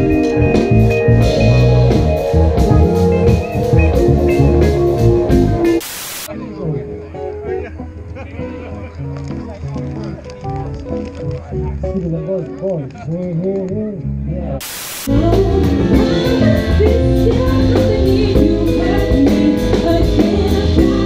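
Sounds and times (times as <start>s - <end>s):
live band playing: 0.0s - 12.2s, 15.0s - 21.0s
tv static hiss: 5.8s - 6.3s, 14.6s - 15.2s.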